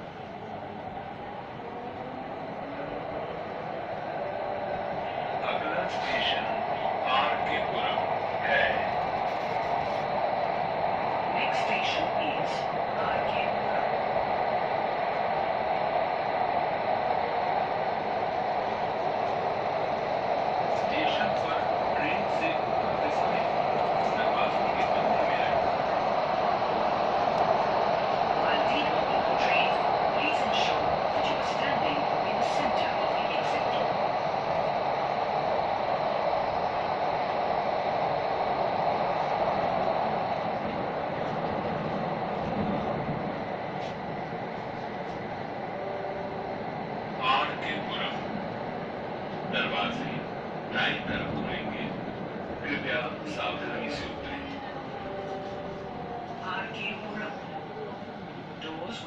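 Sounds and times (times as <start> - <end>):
train rumbling through tunnel: 0.0 - 59.0.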